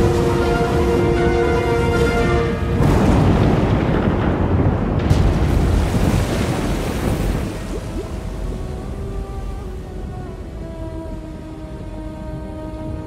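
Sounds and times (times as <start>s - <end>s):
loud rumbling crash: 2.6s - 8.9s.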